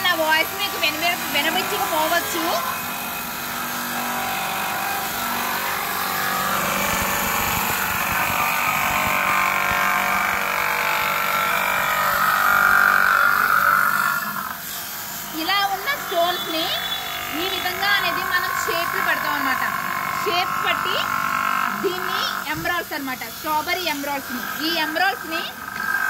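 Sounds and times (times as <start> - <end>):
cutting machine whining grind: 0.0 - 26.0.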